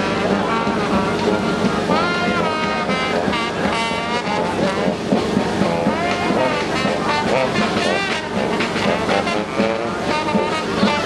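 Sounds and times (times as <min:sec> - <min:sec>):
crowd chatter: 0:00.0 - 0:11.0
marching brass band: 0:00.0 - 0:11.0.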